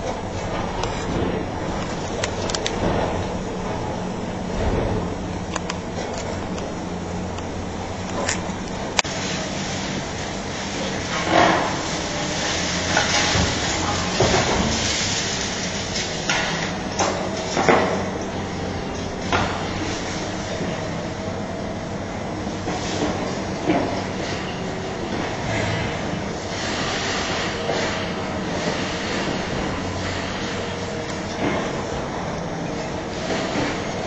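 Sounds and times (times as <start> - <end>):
excavator diesel engine running: 0.0 - 34.0
concrete crunching and falling: 4.6 - 18.2.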